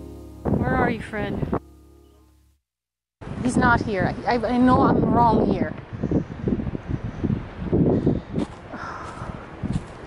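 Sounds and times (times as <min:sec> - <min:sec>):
wind on microphone: 0:00.4 - 0:01.6, 0:03.2 - 0:10.0
footsteps: 0:08.4 - 0:10.0.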